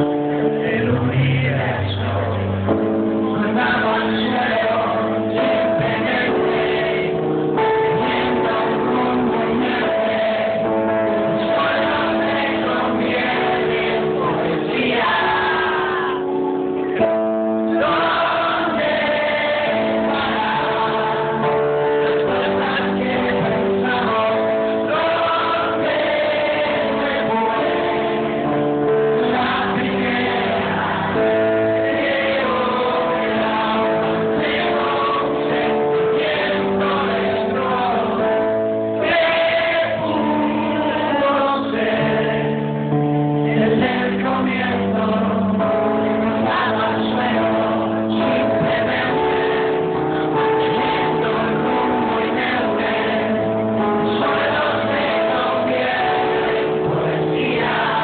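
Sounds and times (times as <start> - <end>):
keyboard accompaniment: 0.0 - 58.0
man singing: 0.0 - 58.0.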